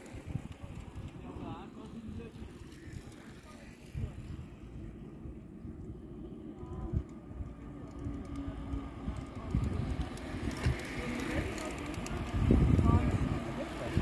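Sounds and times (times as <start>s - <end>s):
bicycles riding past: 0.0s - 14.0s
riders' voices: 0.0s - 14.0s
wind buffeting microphone: 0.0s - 14.0s.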